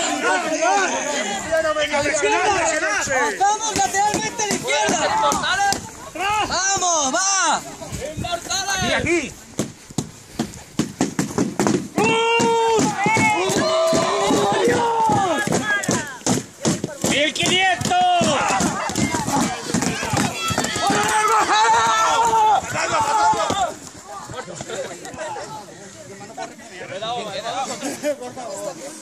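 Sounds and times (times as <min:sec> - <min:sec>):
people shouting and yelling: 0:00.0 - 0:09.6, 0:11.8 - 0:29.0
padded weapons striking shields: 0:09.6 - 0:23.7.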